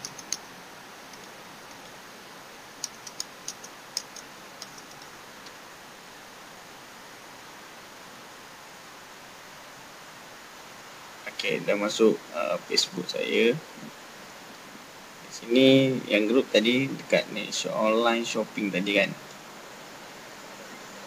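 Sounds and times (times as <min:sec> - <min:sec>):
keyboard keys typing: 0:00.0 - 0:00.5, 0:02.8 - 0:05.2
mouse clicking: 0:00.0 - 0:00.5, 0:02.8 - 0:05.6
steady background hiss: 0:00.0 - 0:21.0.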